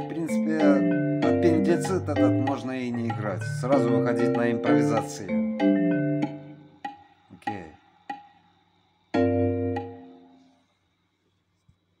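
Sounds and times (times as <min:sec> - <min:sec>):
computer piano playback: 0:00.0 - 0:06.6, 0:09.2 - 0:10.4.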